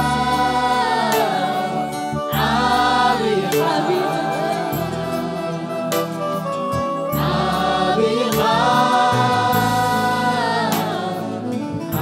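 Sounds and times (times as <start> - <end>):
choir singing worship song: 0.0 - 12.0.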